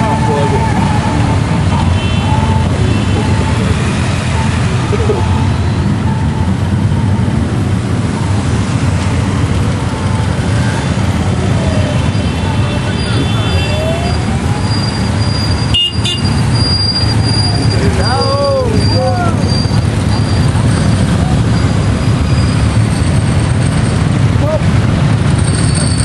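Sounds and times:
motorcycle revving: 0.0 - 26.0.

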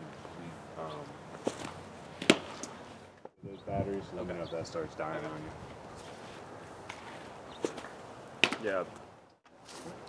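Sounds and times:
baseball smacking into mitt: 1.4 - 2.7, 7.6 - 8.8.

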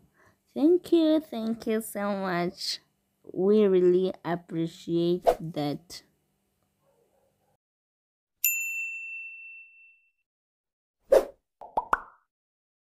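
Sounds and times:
bell-like ding: 8.4 - 10.2
pop: 11.6 - 12.2.

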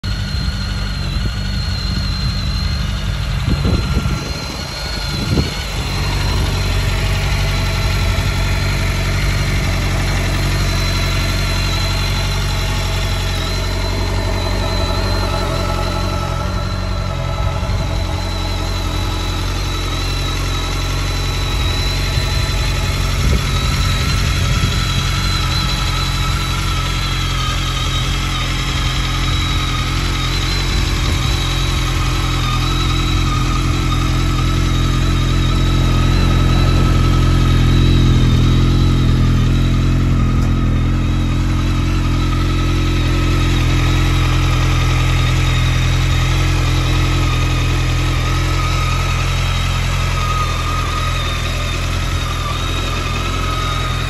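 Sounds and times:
motorcycle engine idling: 0.0 - 54.0.

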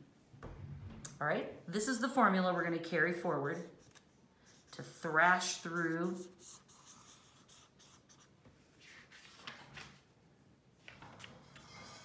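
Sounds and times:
felt-tip pen scratching on paper: 3.6 - 8.3.

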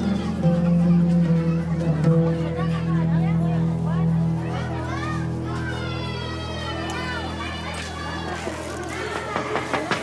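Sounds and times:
background music: 0.0 - 10.0
children chattering: 0.0 - 10.0.

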